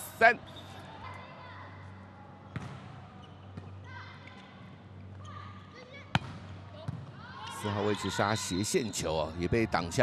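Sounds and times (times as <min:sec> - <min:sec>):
sports hall background: 0:00.0 - 0:10.0.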